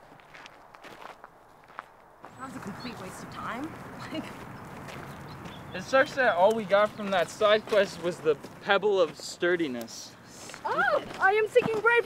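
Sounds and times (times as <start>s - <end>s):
footsteps on dry grass: 0.0s - 9.3s.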